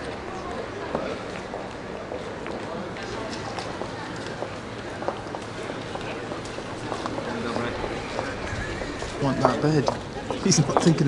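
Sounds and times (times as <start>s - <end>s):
murmur of distant voices: 0.0s - 11.0s
footsteps on paving: 0.8s - 11.0s.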